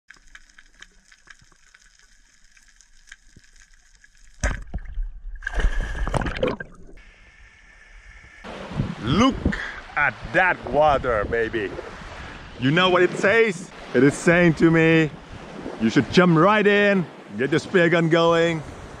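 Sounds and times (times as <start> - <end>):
small clicks underwater: 0.1 - 4.9
water sloshing: 0.1 - 7.0
loud water splash: 4.4 - 7.0
faint underwater hiss: 7.0 - 10.3
man speaking: 9.0 - 12.0, 12.6 - 15.2, 15.8 - 18.6.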